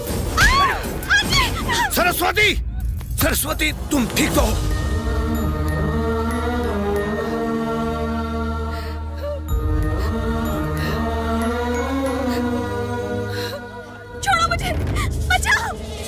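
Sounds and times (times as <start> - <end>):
chant-like voices holding notes: 4.5 - 14.6.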